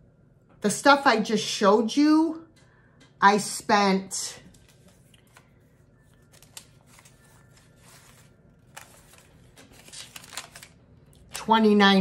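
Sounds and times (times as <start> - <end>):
paper receipts rustling: 4.5 - 11.4.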